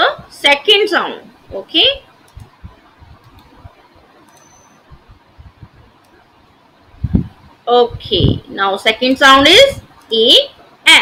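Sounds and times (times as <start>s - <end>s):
computer mouse clicks: 2.2s - 2.6s, 3.2s - 4.8s.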